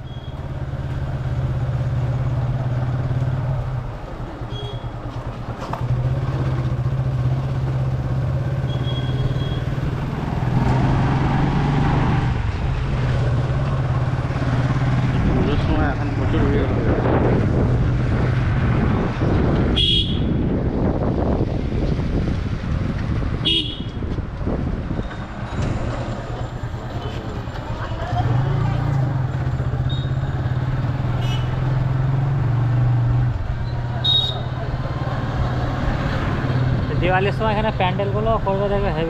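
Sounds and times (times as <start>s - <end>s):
wind and road noise: 0.0s - 39.0s
short vehicle horn toots: 19.8s - 20.3s.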